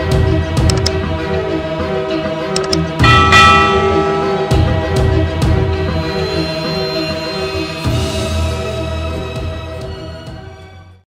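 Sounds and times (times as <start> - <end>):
background music: 0.0 - 11.0
quick clicks: 0.7 - 1.0, 2.6 - 2.9
bright bell chime: 3.0 - 7.1.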